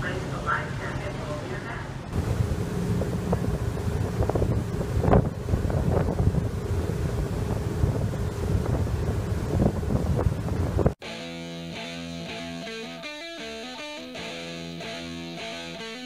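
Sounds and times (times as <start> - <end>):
boat wake rushing water: 0.0 - 11.0
wind buffeting microphone: 2.1 - 11.0.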